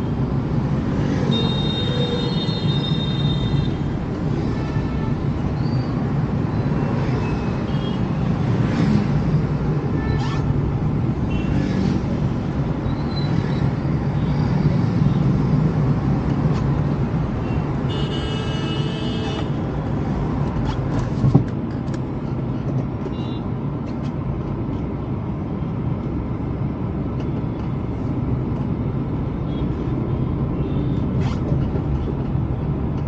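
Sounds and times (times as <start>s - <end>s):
slow city traffic: 0.0s - 33.0s
vehicle horn: 17.9s - 19.5s.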